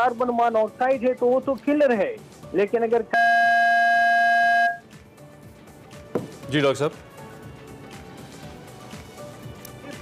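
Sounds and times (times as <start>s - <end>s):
buzzy electronic beep tone: 3.1s - 4.8s.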